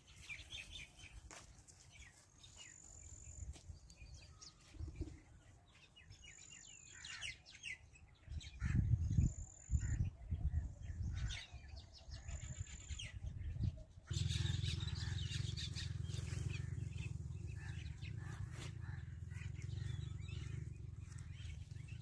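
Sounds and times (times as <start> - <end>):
small birds chirping: 0.0 - 22.0
steady low hum: 13.3 - 22.0
short low rumbles: 14.1 - 22.0.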